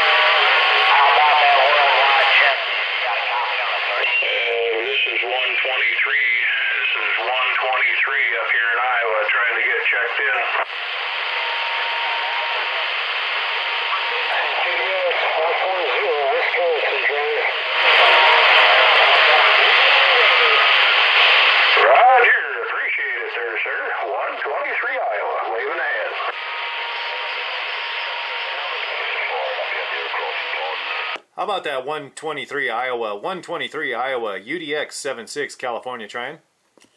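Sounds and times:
faint garbled radio voices: 0.0s - 36.4s
radio hiss and static: 0.0s - 36.4s.

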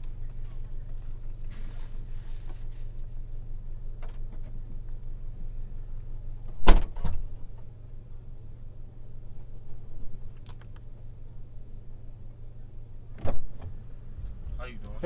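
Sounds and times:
car engine idling: 0.0s - 15.0s
clunk from car body: 6.6s - 7.3s, 13.2s - 13.8s.

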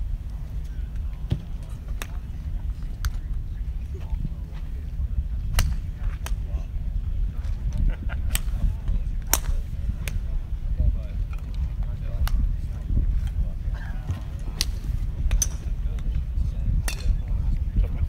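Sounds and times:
wind rumble on microphone: 0.0s - 18.0s
golf clubs striking balls: 0.6s - 4.3s, 5.4s - 6.6s, 7.4s - 10.4s, 11.2s - 17.9s.

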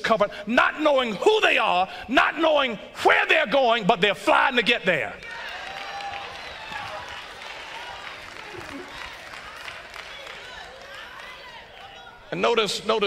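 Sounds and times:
crowd of voices murmuring: 8.2s - 12.3s.

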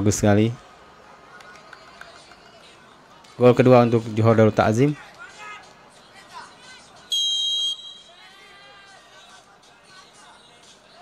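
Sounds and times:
faint voices: 0.0s - 11.0s
referee's whistle blast: 7.1s - 8.3s.

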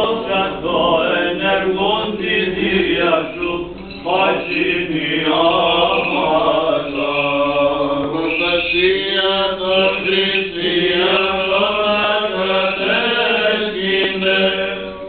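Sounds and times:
chanted melody: 0.0s - 15.0s
held vocal drone: 0.0s - 15.0s.

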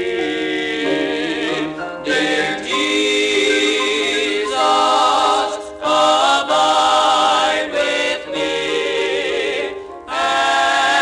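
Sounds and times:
male vocal quartet singing in harmony: 0.0s - 11.0s.

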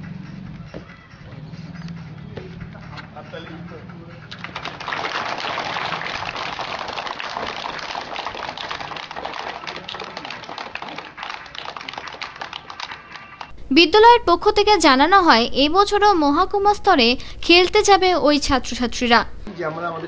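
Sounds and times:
children clapping: 4.3s - 13.5s.

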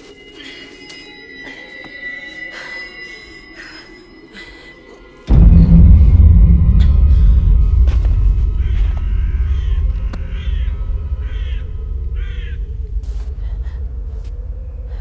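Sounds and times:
deep rumbling horror drone: 5.3s - 15.0s
crow cawing: 9.1s - 14.8s.

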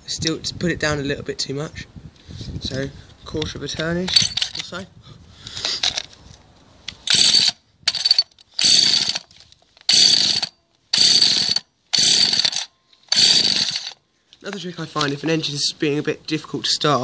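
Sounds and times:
hedge cutter pull-starter whirring: 6.9s - 14.0s.

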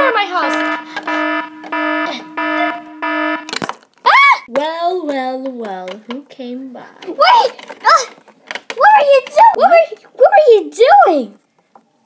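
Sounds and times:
alarm beeping: 0.0s - 3.6s
continuous lower tone: 0.0s - 3.6s.

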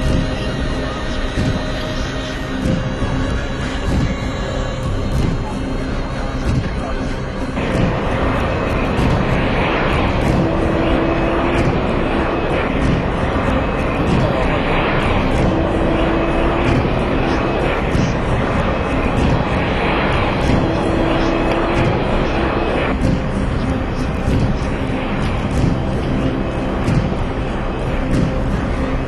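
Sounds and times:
jet engines rushing: 0.0s - 29.0s
people's voices: 0.0s - 29.0s.

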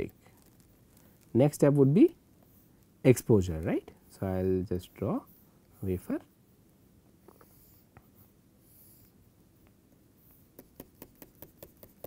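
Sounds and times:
stylus scratching on tablet: 10.4s - 12.0s.

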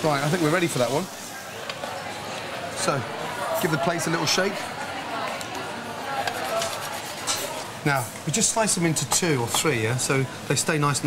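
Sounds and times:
metal spoon scraping steel pan: 6.3s - 7.7s.

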